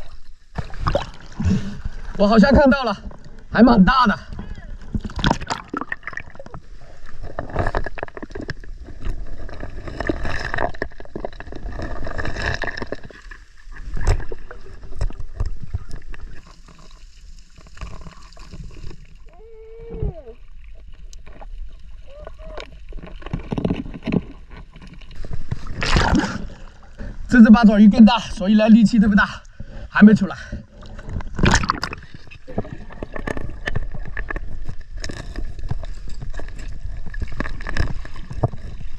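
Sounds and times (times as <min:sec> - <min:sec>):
sea water sloshing and splashing: 0:00.0 - 0:02.3, 0:04.2 - 0:27.3, 0:29.5 - 0:38.9
muffled underwater sound: 0:19.2 - 0:23.6, 0:32.4 - 0:35.4
loud splash: 0:25.7 - 0:26.6.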